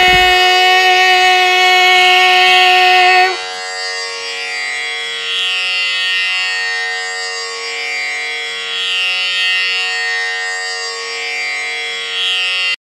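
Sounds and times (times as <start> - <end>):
tanpura drone: 0.0 - 12.8.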